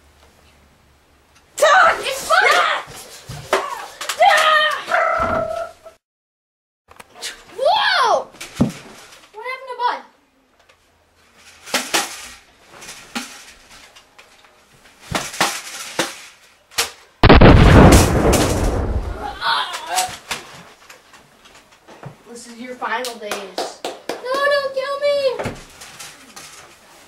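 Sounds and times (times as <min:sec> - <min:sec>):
loud gunshot-like bang: 0:17.2 - 0:19.3.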